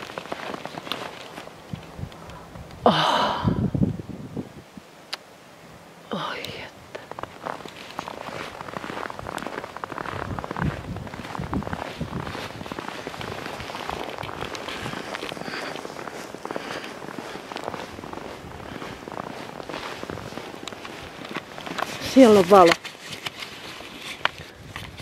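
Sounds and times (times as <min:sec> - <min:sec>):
footsteps crunching in snow: 0:00.0 - 0:02.1, 0:07.0 - 0:25.0
breathy whisper-like voice: 0:06.1 - 0:07.2, 0:14.6 - 0:17.5.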